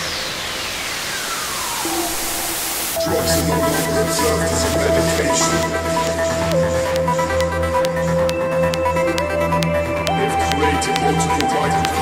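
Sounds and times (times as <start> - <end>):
hissing noise sweep: 0.0 - 12.0
kick drum and bassline: 3.0 - 12.0.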